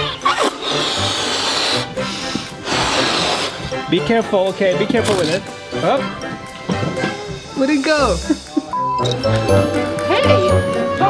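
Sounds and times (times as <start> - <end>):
man blowing up a balloon: 0.0 - 3.9, 5.0 - 5.8
background music: 0.0 - 11.0.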